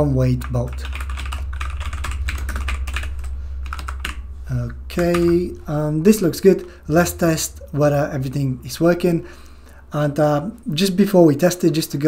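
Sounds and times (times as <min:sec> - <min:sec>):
steady low hum: 0:00.0 - 0:12.0
fast typing on computer keyboard: 0:00.3 - 0:05.5.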